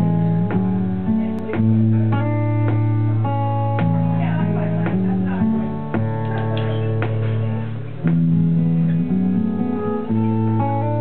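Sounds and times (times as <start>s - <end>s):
band guitars playing chords: 0.0s - 11.0s.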